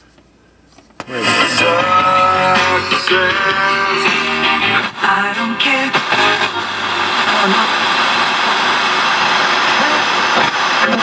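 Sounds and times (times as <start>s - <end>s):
broadcast voices: 1.0s - 8.6s, 9.2s - 11.0s
radio static hiss: 3.0s - 11.0s.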